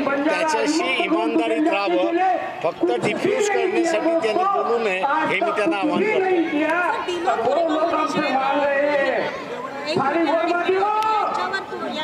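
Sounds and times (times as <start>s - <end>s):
several voices talking at once: 0.0s - 12.0s.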